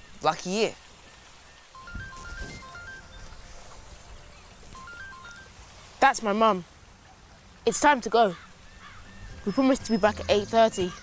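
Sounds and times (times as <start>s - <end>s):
mobile phone ringtone beeps: 1.5s - 4.0s, 4.7s - 5.6s, 9.2s - 11.0s.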